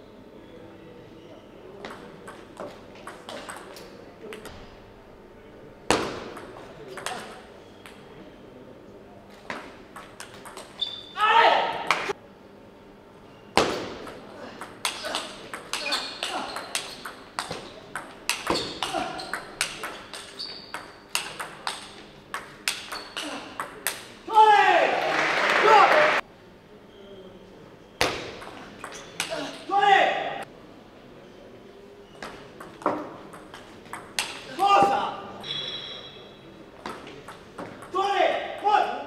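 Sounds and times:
player shouting: 0:11.2 - 0:11.9, 0:24.3 - 0:26.2, 0:29.3 - 0:30.4, 0:34.5 - 0:35.3, 0:37.9 - 0:39.0.

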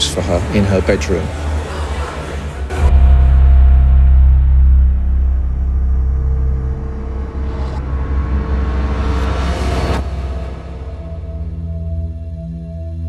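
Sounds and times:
dark ominous music drone: 0:00.0 - 0:13.0.

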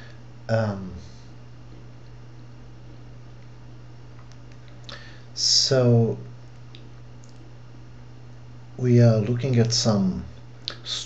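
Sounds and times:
low recording hum: 0:00.0 - 0:11.0.

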